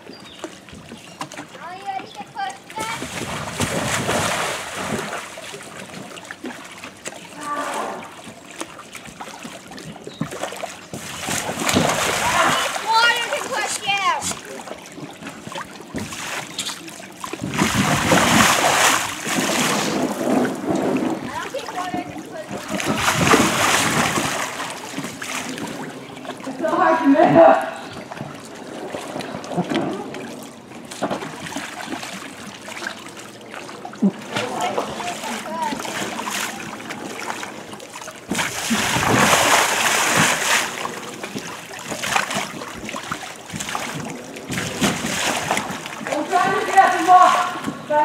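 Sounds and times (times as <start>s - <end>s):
pool water splashing: 0.0s - 48.0s.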